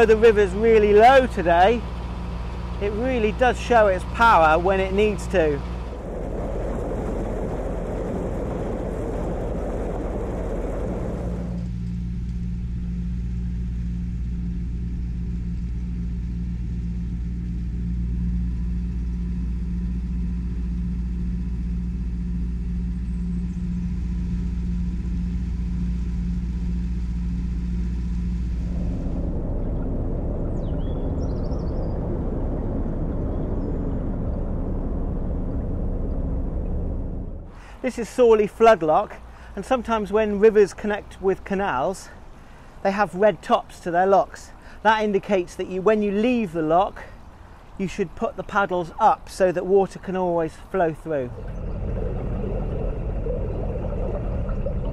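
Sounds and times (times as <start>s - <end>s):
boat engine humming: 0.0s - 54.9s
rushing noise: 4.0s - 11.7s, 28.0s - 37.9s.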